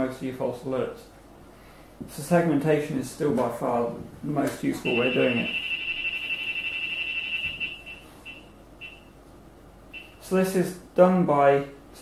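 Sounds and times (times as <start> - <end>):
high beep tone: 4.8 - 9.2, 9.9 - 10.2
short beeps: 4.8 - 9.2, 9.9 - 10.2.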